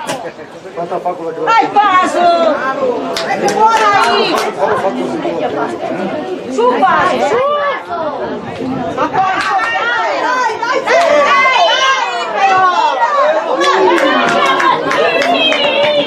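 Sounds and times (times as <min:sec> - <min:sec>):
voices calling and chattering: 0:00.0 - 0:16.0.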